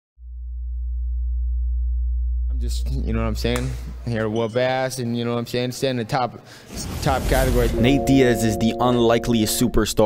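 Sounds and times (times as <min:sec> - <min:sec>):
deep sub-bass tone: 0:00.2 - 0:04.0.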